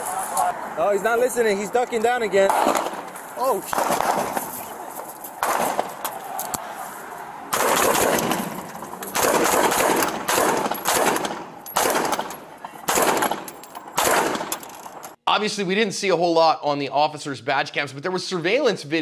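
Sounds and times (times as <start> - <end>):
rifle gunshots echoing: 2.4 - 4.5, 5.4 - 6.1, 7.5 - 15.0.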